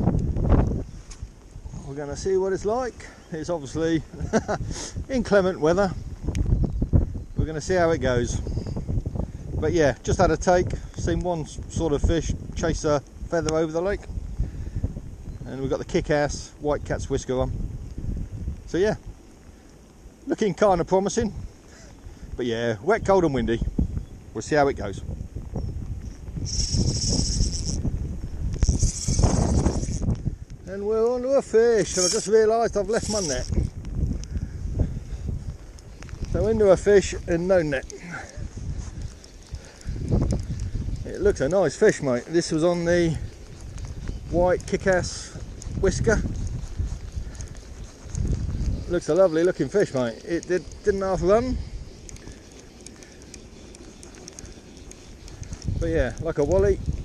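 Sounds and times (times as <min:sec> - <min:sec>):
light rain patter: 0:00.0 - 0:57.0
wind buffeting microphone: 0:00.0 - 0:57.0.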